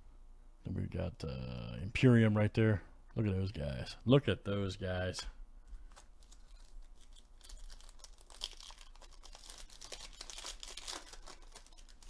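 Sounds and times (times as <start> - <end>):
foil pack crinkling and tearing: 5.9 - 12.0.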